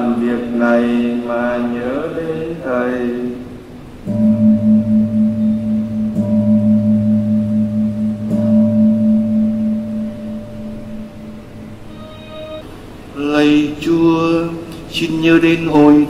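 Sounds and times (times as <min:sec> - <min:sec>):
low-pitched gong ringing: 0:04.0 - 0:12.7.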